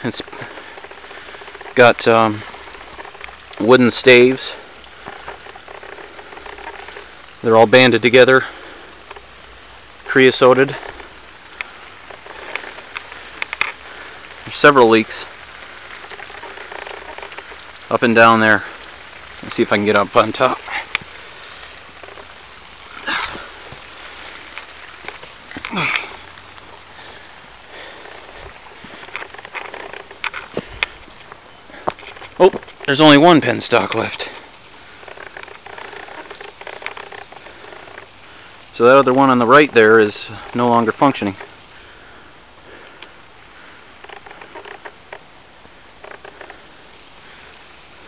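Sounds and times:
steady hiss: 0.0 - 48.0
water spraying from leak: 0.0 - 48.0
person exhaling heavily: 22.9 - 23.7, 25.5 - 29.0.

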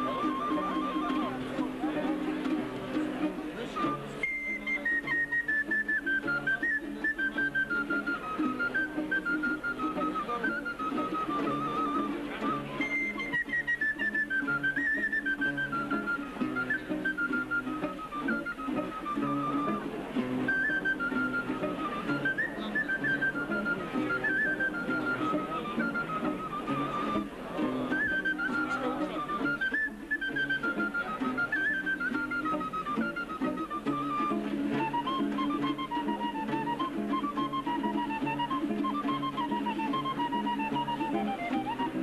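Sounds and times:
instrumental melody over held notes: 0.0 - 42.0.

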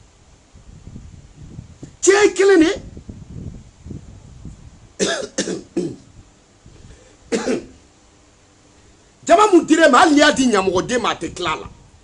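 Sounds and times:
man coughing: 5.0 - 6.1, 7.3 - 7.8.

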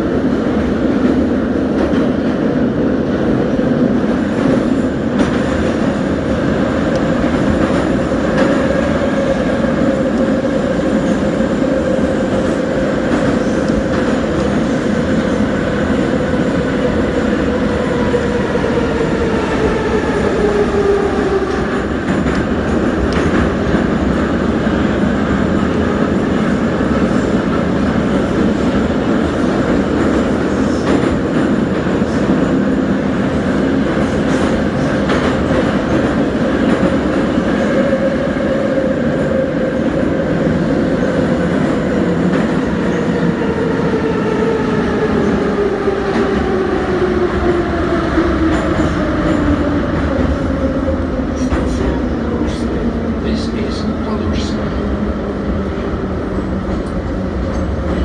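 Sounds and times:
rumble of train wheels on rail: 0.0 - 58.0.

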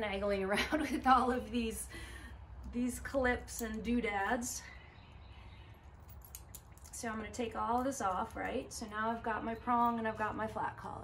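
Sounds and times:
metal collar hardware clicking: 3.3 - 4.1, 5.8 - 10.1.

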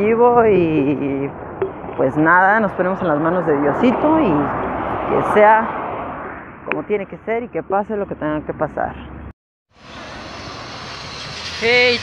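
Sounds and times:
steady outdoor rushing noise: 0.0 - 6.7, 8.9 - 12.0.

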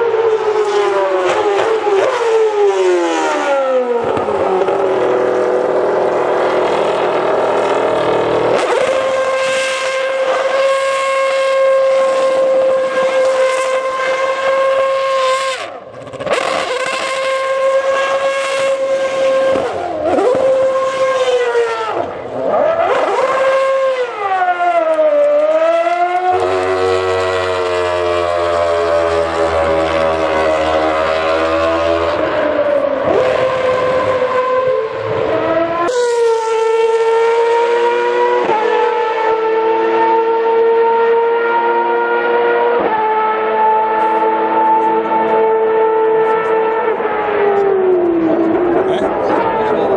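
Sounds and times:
racing car engine revving: 0.0 - 49.9.

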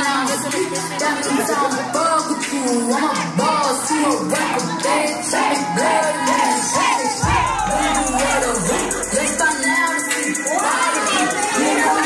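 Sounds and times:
loud dance music: 0.0 - 12.0
women shouting and cheering: 0.0 - 12.0.

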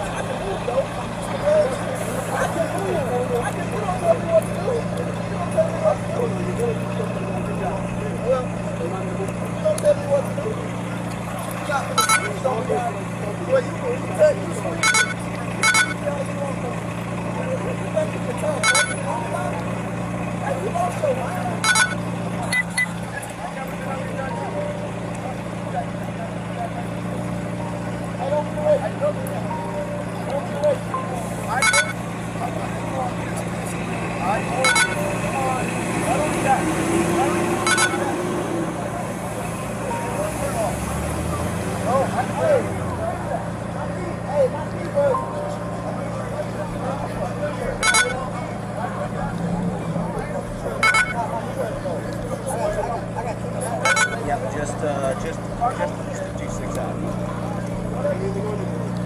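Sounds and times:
indistinct voices: 0.0 - 59.0.

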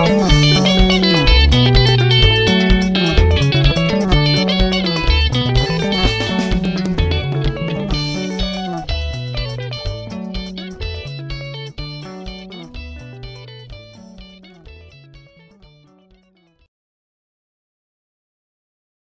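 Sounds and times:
drums: 0.0 - 15.0
interlocking electric guitars: 0.0 - 16.5
pulsing bass guitar: 0.0 - 16.5.

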